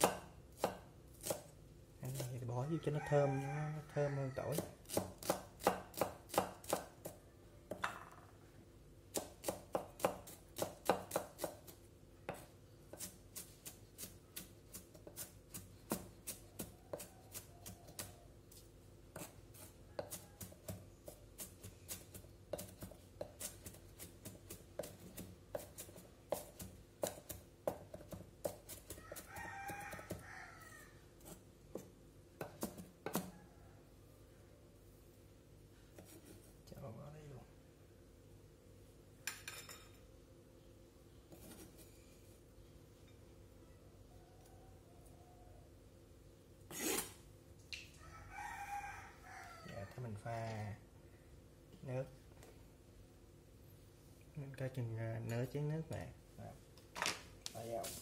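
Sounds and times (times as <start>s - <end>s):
knife chopping on wooden board: 0.0s - 1.5s, 4.5s - 8.0s, 9.1s - 18.1s, 19.1s - 30.2s, 31.3s - 33.3s.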